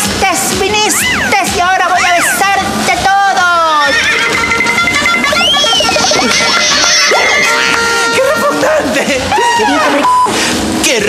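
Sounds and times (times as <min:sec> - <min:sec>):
background music: 0:00.0 - 0:11.0
high falling cry: 0:00.9 - 0:02.8, 0:03.8 - 0:10.1.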